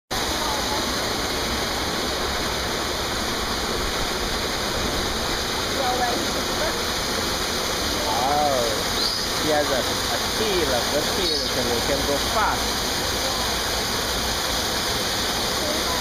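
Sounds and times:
water pouring into a pool: 0:00.1 - 0:16.0
faint voices: 0:07.8 - 0:13.7.

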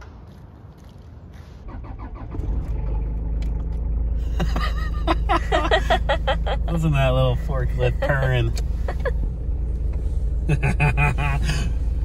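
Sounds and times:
diesel engine rumbling: 0:00.0 - 0:12.0
man laughing: 0:04.2 - 0:09.2, 0:10.4 - 0:11.8.

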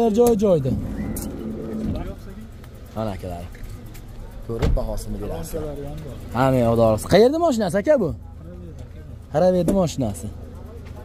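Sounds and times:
men talking: 0:00.0 - 0:11.0
steady low rumble: 0:00.4 - 0:11.0.

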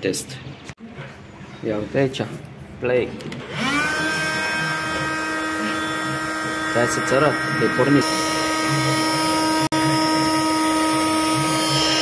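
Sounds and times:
oscillating multi-tool whine: 0:03.4 - 0:12.0.

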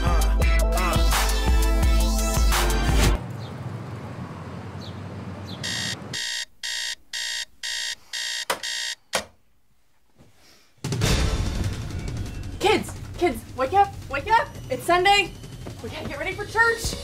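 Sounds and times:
background music: 0:00.0 - 0:03.2, 0:10.8 - 0:17.0
digital alarm clock beeping: 0:05.6 - 0:09.0.

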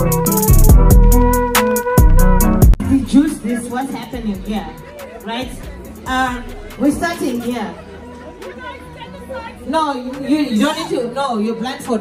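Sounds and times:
women chattering: 0:02.9 - 0:12.0.

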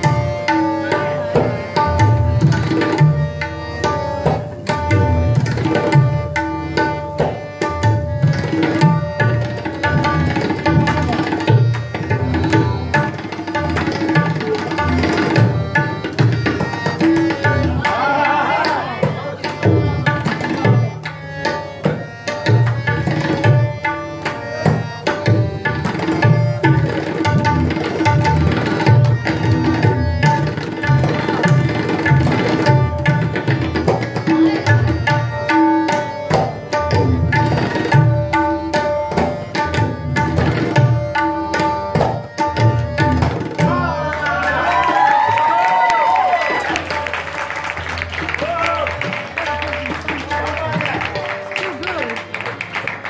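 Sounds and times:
tabla drumming: 0:00.0 - 0:53.0.

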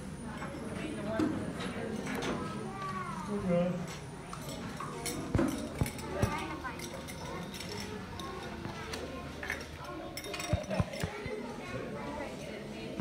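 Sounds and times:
people talking: 0:00.2 - 0:13.0.

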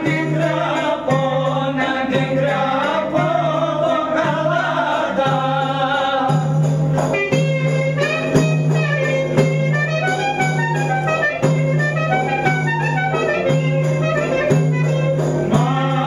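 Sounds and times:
folk dance melody: 0:00.0 - 0:16.0
frame drum beats: 0:00.0 - 0:16.0.

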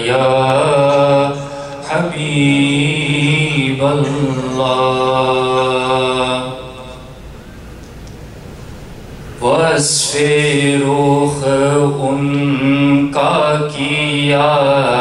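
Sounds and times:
man chanting: 0:00.0 - 0:07.2, 0:09.4 - 0:15.0.

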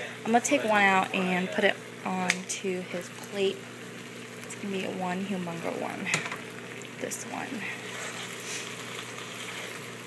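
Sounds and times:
chicken sizzling in bubbling sauce: 0:00.0 - 0:10.0.

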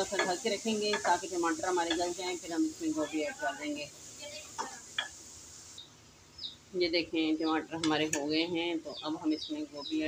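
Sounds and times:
faint sizzle of frying: 0:00.0 - 0:10.0.

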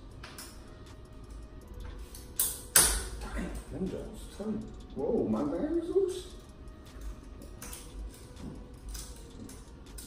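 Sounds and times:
small metal parts clicking: 0:00.2 - 0:03.7, 0:06.4 - 0:10.0.

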